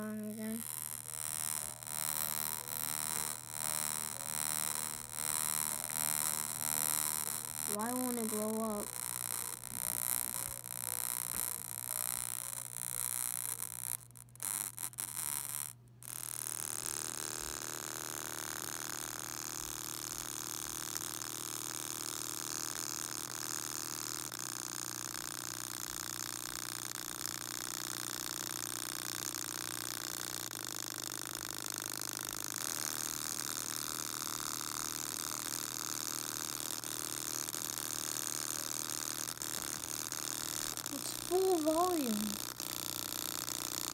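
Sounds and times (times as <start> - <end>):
distorted speaker buzz: 0.0 - 43.9.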